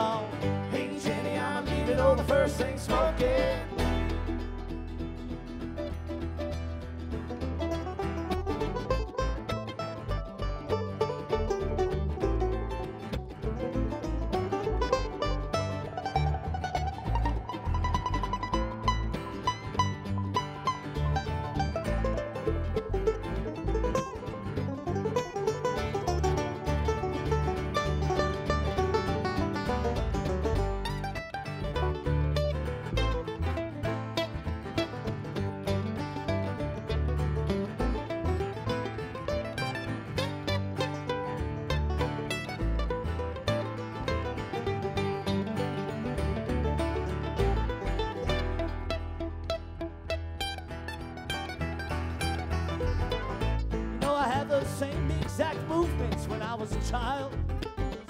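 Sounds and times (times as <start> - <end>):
acoustic guitar: 0.0 - 58.0
banjo picking: 0.0 - 58.0
mandolin picking: 0.0 - 58.0
upright bass: 0.0 - 58.0.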